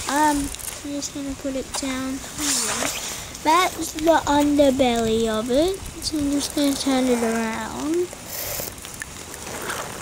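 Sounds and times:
light rain hissing: 0:00.0 - 0:10.0.

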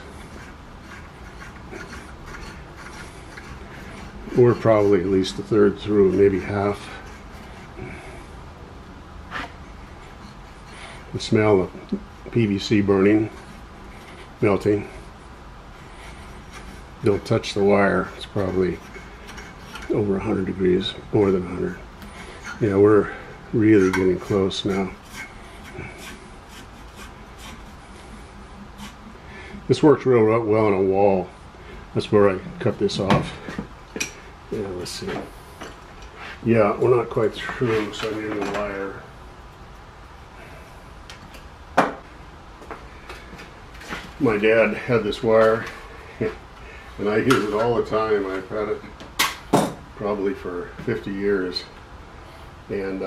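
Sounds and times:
wire saw rubbing through pipe: 0:00.0 - 0:08.1, 0:15.9 - 0:29.8.

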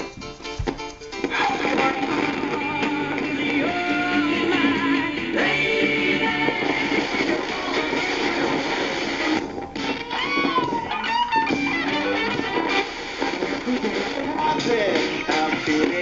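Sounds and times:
guitar music through radio speaker: 0:00.0 - 0:16.0.

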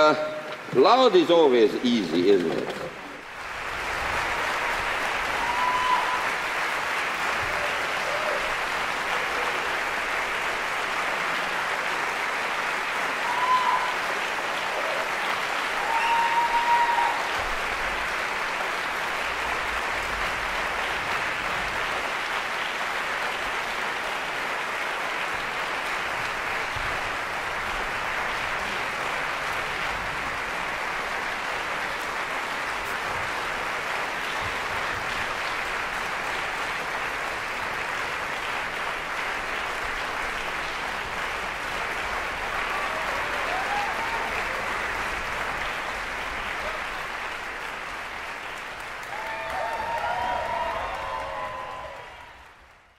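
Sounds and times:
audience applauding: 0:00.0 - 0:52.9
short cheers: 0:05.2 - 0:06.4, 0:07.4 - 0:08.5, 0:13.2 - 0:17.4, 0:42.7 - 0:44.7, 0:49.0 - 0:52.6.

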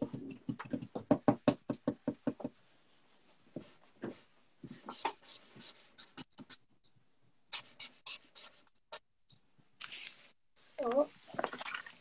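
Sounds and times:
pens and crayons scratching paper: 0:03.6 - 0:06.7, 0:07.5 - 0:09.1.

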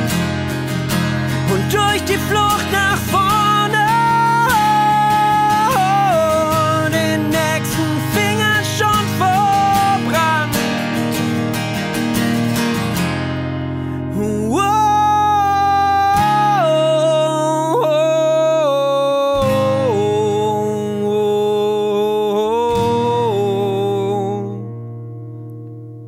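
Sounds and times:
acoustic guitar strumming: 0:00.0 - 0:26.0
man singing: 0:01.3 - 0:11.1, 0:14.0 - 0:24.7.

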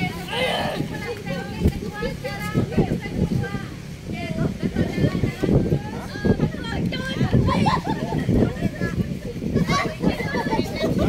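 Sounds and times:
adults and children talking: 0:00.0 - 0:11.0.

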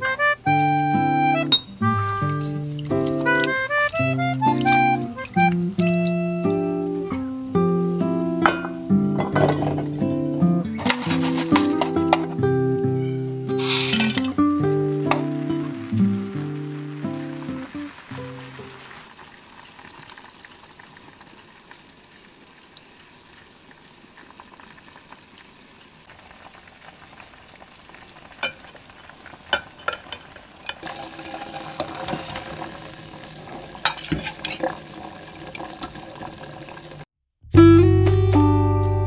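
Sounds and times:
faint steady hiss: 0:00.0 - 0:37.1
liquid bubbling and popping: 0:01.8 - 0:06.6, 0:14.0 - 0:37.1.

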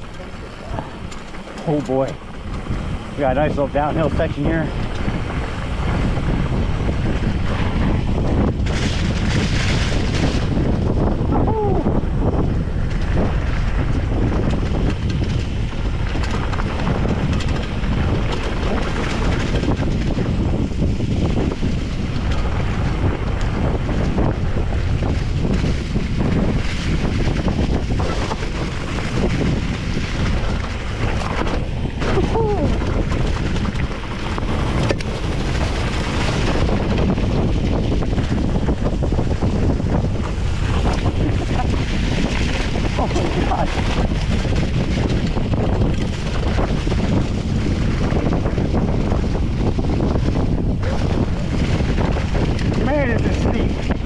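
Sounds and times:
bike rattling and knocking: 0:00.0 - 0:54.0
tyres rolling on dirt trail: 0:00.0 - 0:54.0
wind buffeting microphone: 0:00.0 - 0:54.0.

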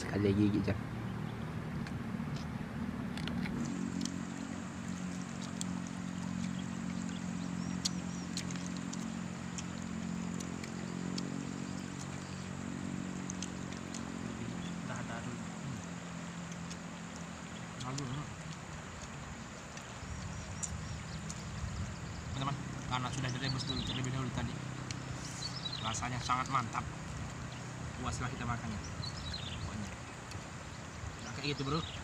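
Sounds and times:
engine running steadily: 0:00.0 - 0:32.0.

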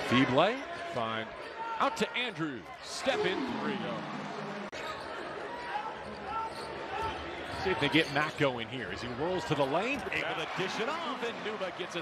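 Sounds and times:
arena crowd: 0:00.0 - 0:12.0.

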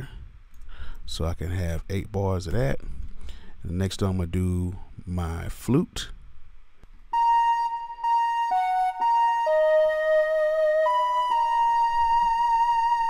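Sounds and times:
flute melody: 0:07.1 - 0:13.0.

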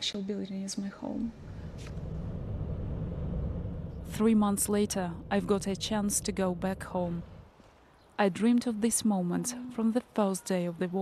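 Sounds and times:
car rumble from inside cabin: 0:01.4 - 0:07.5.

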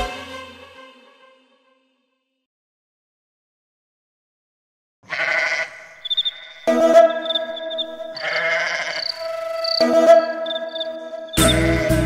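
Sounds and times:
sheep bleating: 0:05.0 - 0:09.2, 0:11.3 - 0:12.0
high twittering trills: 0:05.8 - 0:12.0.

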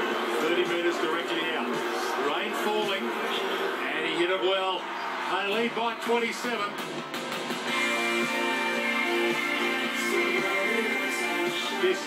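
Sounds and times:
background music: 0:00.0 - 0:12.0
voices over music: 0:08.7 - 0:12.0.

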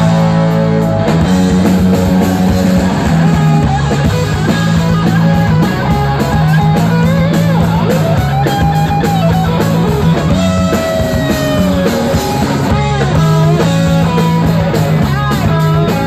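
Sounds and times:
electric guitar lead line: 0:00.0 - 0:16.0
live rock band playing: 0:00.0 - 0:16.0.

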